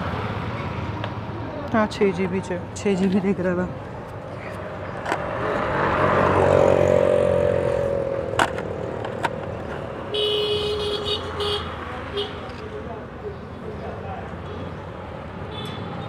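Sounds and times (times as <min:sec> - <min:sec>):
vehicle passing by: 0:00.0 - 0:10.1
vehicle horn: 0:10.1 - 0:12.4.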